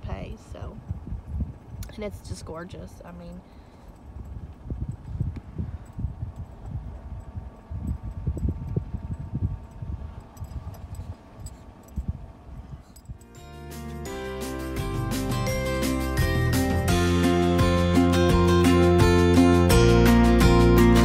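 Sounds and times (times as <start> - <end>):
wind buffeting microphone: 0.0 - 13.3
music: 13.2 - 21.0.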